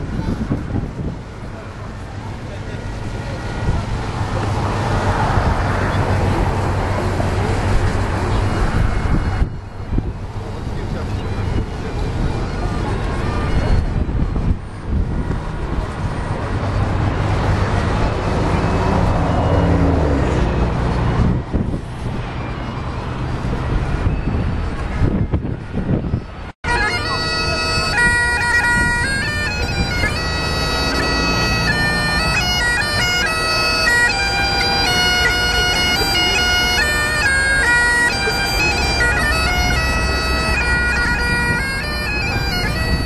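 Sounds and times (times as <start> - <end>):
wind on microphone: 0.0 - 2.4, 3.0 - 26.5, 27.2 - 34.7, 38.7 - 43.0
people talking: 0.0 - 43.0
road traffic noise: 0.0 - 43.0.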